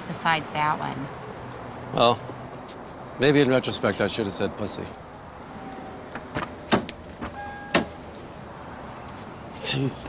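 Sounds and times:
car door clicks: 0:06.1 - 0:08.0
short electronic beep: 0:07.4 - 0:07.9.

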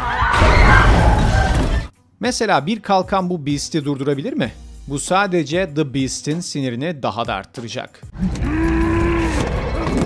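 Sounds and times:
man crying out: 0:08.3 - 0:09.4.

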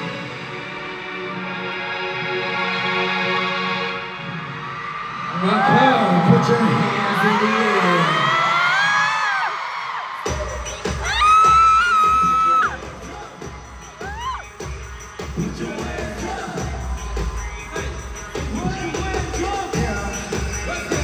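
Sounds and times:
crowd screaming: 0:04.0 - 0:21.0
pop song with deep bass beat: 0:10.2 - 0:21.0.

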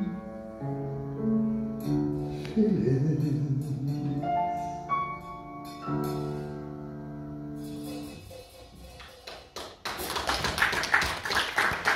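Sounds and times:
audience applause: 0:09.2 - 0:11.9.

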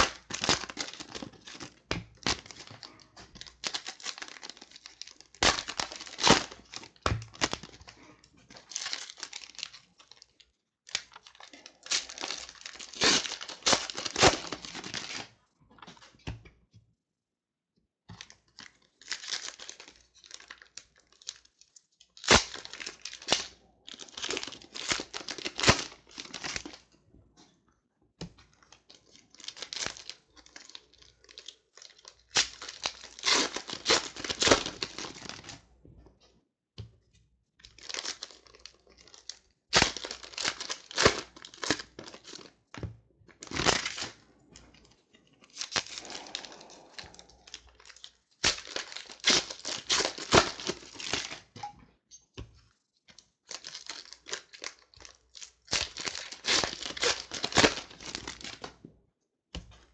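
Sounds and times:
plastic wrappers tearing and crinkling: 0:00.0 - 0:15.3, 0:18.2 - 0:26.9, 0:28.5 - 0:35.6, 0:37.6 - 0:42.6, 0:43.3 - 0:44.2, 0:45.4 - 0:51.5, 0:53.2 - 0:58.7.

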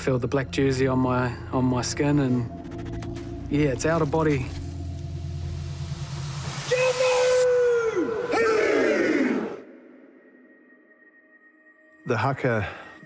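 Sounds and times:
low drone: 0:00.0 - 0:11.6
man's long shouted calls: 0:06.7 - 0:09.8.

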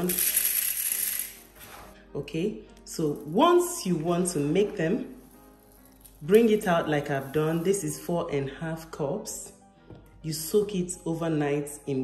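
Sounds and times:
seeds pouring into plastic bowl: 0:05.0 - 0:08.0.

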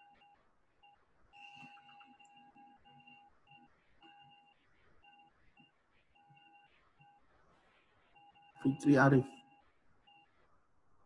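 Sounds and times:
short electronic beeps: 0:08.2 - 0:10.3.

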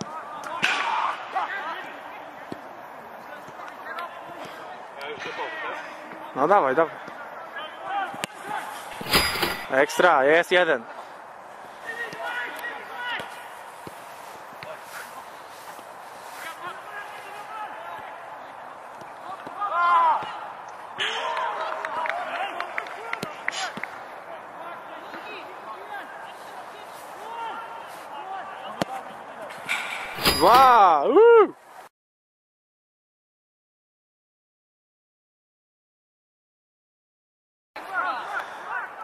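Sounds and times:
loud shout: 0:19.5 - 0:23.7, 0:30.4 - 0:31.6.

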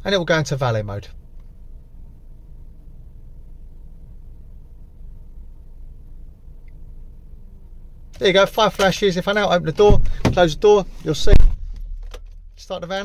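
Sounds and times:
low rumble inside van cab: 0:00.0 - 0:13.0.

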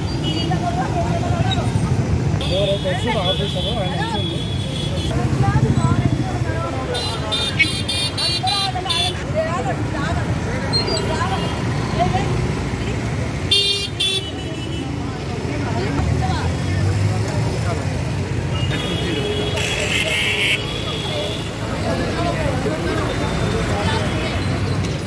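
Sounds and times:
traffic engines rumbling: 0:00.0 - 0:25.0.

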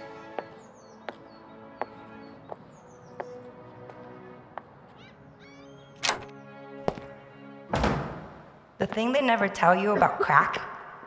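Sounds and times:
soft sustained music: 0:00.0 - 0:07.8
door opening and shutting: 0:06.0 - 0:06.3, 0:07.7 - 0:08.3.

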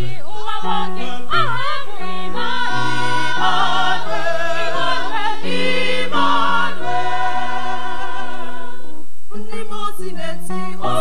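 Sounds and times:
choir singing a carol: 0:00.0 - 0:11.0.

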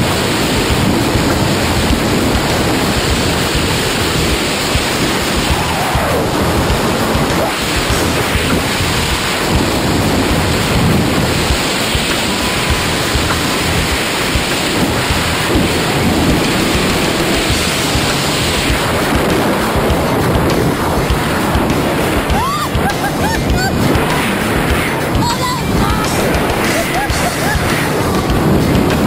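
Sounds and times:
wind rushing over microphone: 0:00.0 - 0:29.0.

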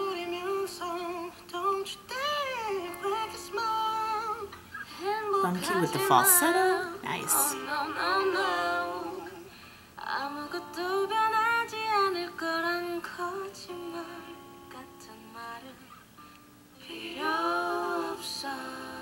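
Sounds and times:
woman singing slow r and b: 0:00.0 - 0:16.0
sparse backing music: 0:04.9 - 0:09.6.

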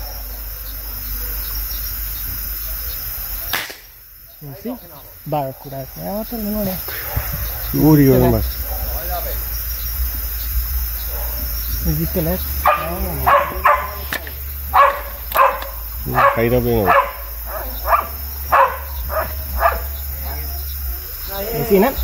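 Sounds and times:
dog barking: 0:00.0 - 0:01.6, 0:06.8 - 0:09.4, 0:11.0 - 0:20.9.

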